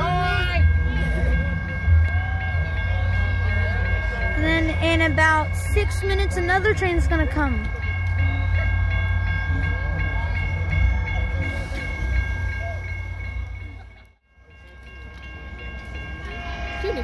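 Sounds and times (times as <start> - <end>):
crossing warning bell ringing: 0.0 - 17.0
train rumbling: 0.0 - 17.0
train horn: 16.2 - 17.0.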